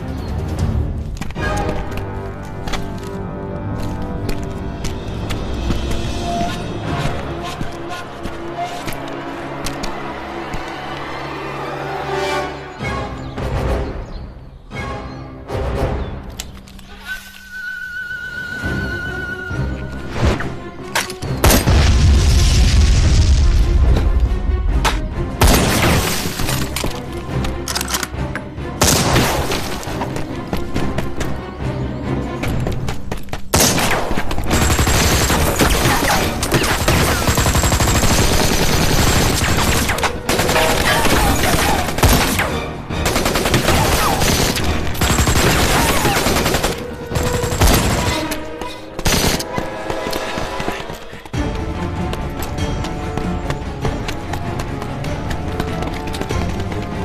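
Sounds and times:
film music score: 0.0 - 57.0.

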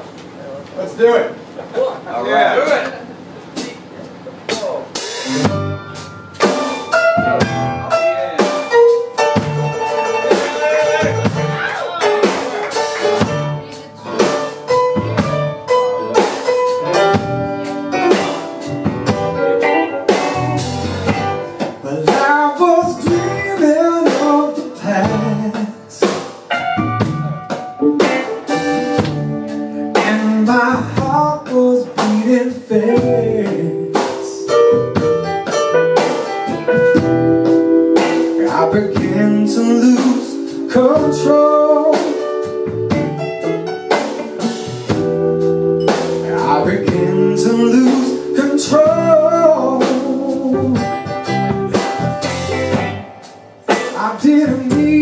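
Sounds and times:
drums: 0.0 - 55.0
bass guitar: 4.6 - 55.0
keyboards: 4.6 - 55.0
electric guitar: 5.3 - 55.0.

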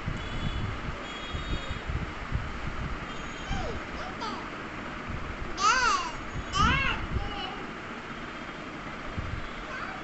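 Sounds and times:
steady rumbling background noise: 0.0 - 10.0.

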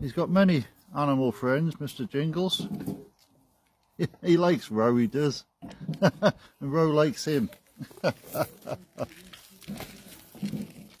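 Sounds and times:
man chuckling softly: 7.8 - 9.3.

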